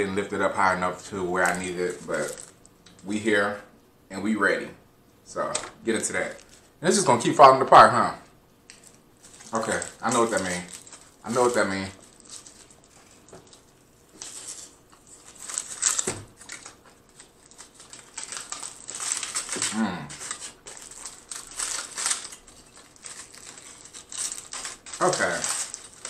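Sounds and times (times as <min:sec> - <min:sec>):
foil wrapper crinkling: 0:00.0 - 0:03.2, 0:05.4 - 0:07.9, 0:08.7 - 0:26.0
person humming: 0:19.6 - 0:20.3.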